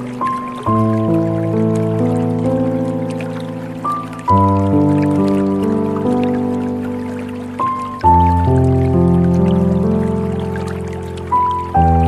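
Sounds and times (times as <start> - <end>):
slow calm piano music: 0.0 - 12.0
soft water drips: 0.0 - 12.0
trickling water: 0.0 - 12.0.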